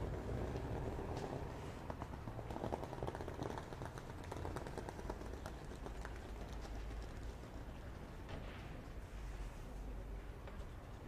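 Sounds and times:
faint background rumble: 0.0s - 11.0s.

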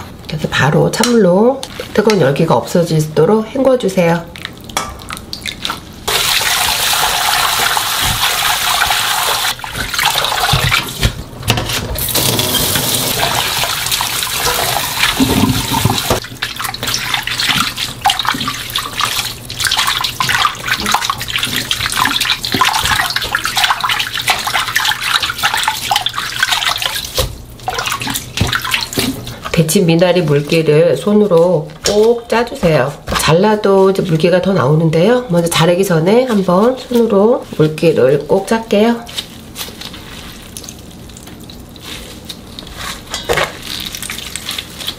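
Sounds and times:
water sloshing and splashing: 1.6s - 2.5s, 4.0s - 44.9s
water running into metal bowl: 4.9s - 11.0s, 12.0s - 29.3s.

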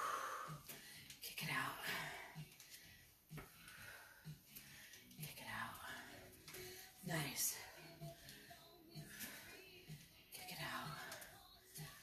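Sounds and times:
woman breathing out heavily: 0.0s - 1.0s.

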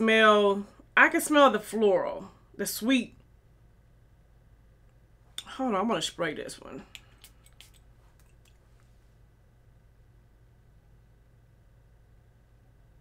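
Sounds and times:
perfume spray bottle spritzing: 7.0s - 7.8s.

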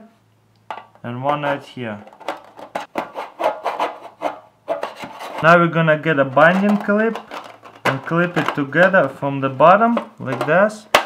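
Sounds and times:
knife scraping aluminium foil pans: 2.1s - 5.6s, 6.4s - 7.8s.

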